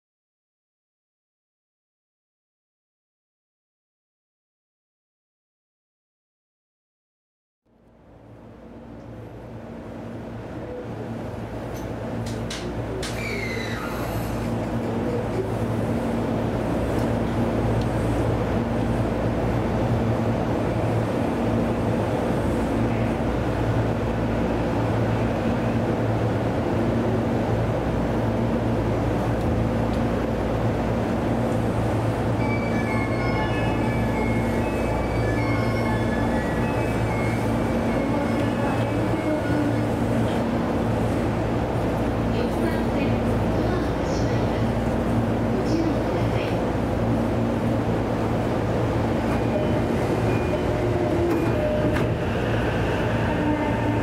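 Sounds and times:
electric train equipment hum: 7.7s - 54.0s.

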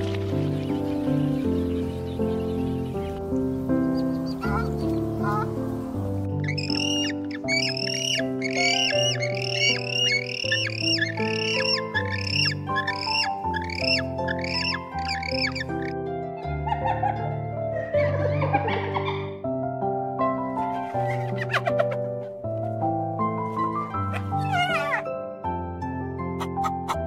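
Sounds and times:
soft instrumental music: 0.0s - 27.0s
bird squawking: 4.0s - 5.6s, 6.4s - 16.0s.

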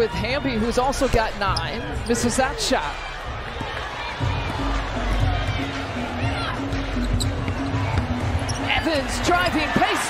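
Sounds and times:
arena crowd noise: 0.0s - 10.0s
background arena music: 0.0s - 10.0s.

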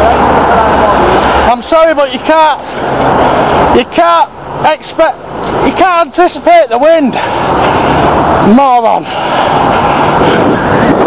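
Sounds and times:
wind buffeting microphone: 7.1s - 11.0s.

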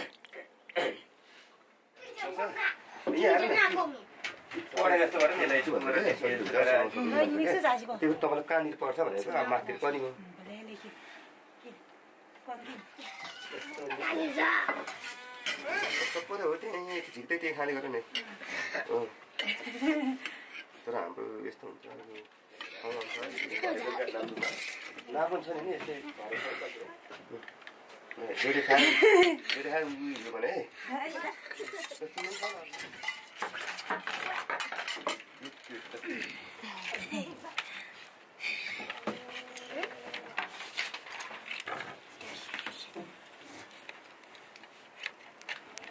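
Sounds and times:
children talking and calling out: 2.0s - 4.2s, 12.8s - 16.0s, 30.9s - 32.0s
steel bowl clattering and scraping: 13.0s - 14.1s, 22.6s - 25.0s, 31.4s - 36.0s
spoon clinking against steel bowl: 32.1s - 33.5s.

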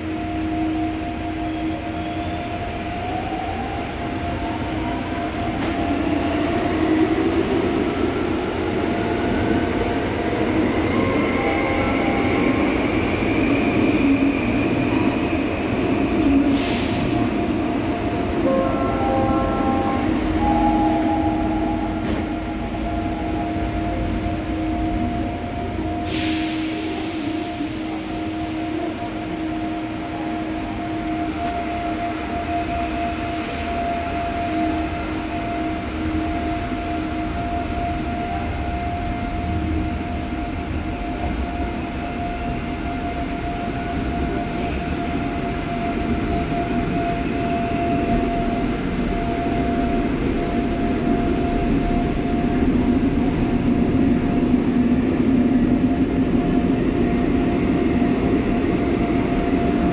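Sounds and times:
train wheels on rail: 0.0s - 59.9s.

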